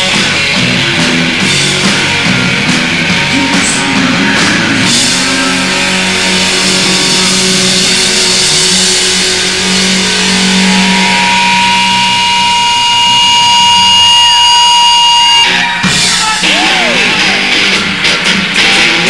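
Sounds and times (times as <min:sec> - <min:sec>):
steady high tone: 0:00.0 - 0:17.8
live rock band playing: 0:00.0 - 0:19.0.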